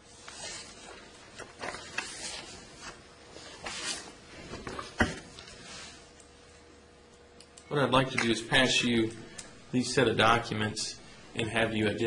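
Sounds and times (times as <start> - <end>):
paper rustling: 0.2 - 6.0.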